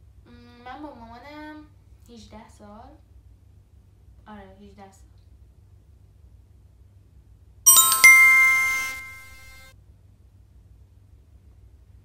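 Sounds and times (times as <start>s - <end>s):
bell-like chime: 7.7s - 9.6s.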